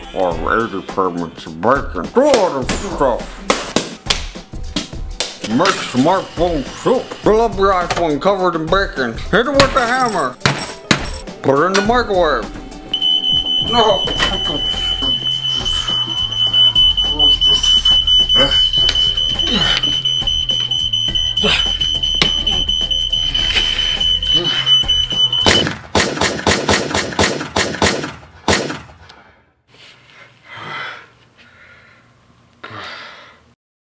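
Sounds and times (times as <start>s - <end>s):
smoke alarm high tone: 6.0s - 7.8s, 12.7s - 25.8s.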